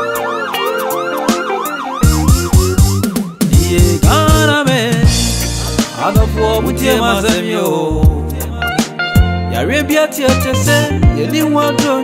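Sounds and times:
yelping siren sound effect: 0.0s - 3.9s.

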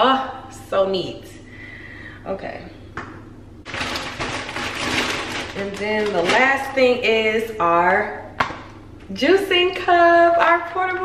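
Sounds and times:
plastic packaging crinkling: 3.7s - 7.0s.

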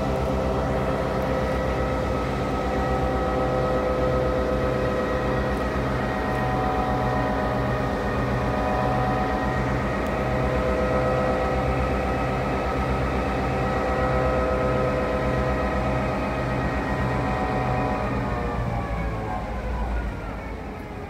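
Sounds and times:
diesel locomotive engine idling: 0.0s - 21.0s.

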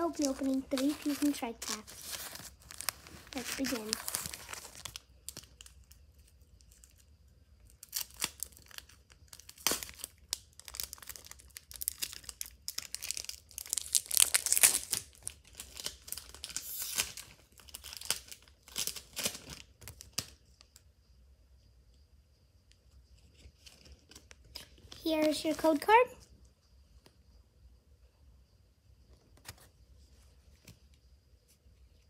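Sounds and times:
foil wrapper tearing and crinkling: 0.0s - 7.0s, 7.7s - 20.4s.

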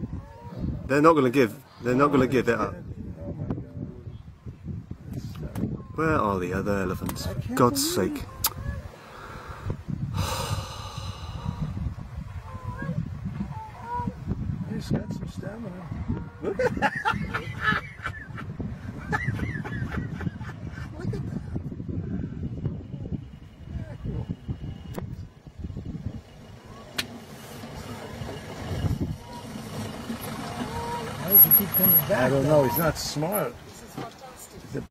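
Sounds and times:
man gasping: 9.1s - 11.8s
low voices murmuring: 21.0s - 34.8s
vehicle engine idling: 23.2s - 34.0s.

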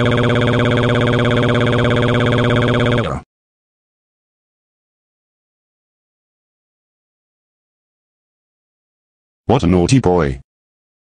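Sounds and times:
text-to-speech voice: 3.0s - 3.2s, 9.5s - 10.4s.

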